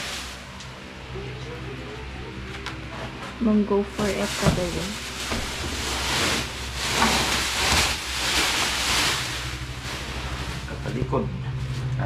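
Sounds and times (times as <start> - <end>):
packaging rustling and scraping: 2.9 - 10.9.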